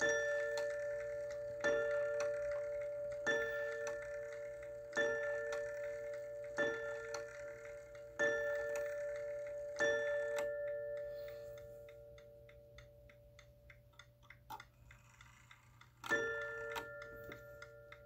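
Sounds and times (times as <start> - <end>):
mantel clock striking: 0.0 - 18.0.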